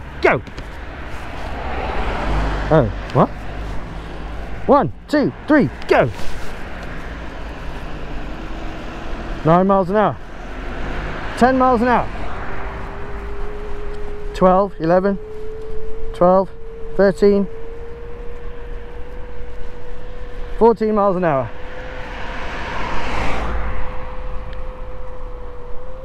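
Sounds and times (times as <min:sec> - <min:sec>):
road noise rushing: 0:00.0 - 0:26.0
electric scooter motor whining: 0:10.2 - 0:26.0.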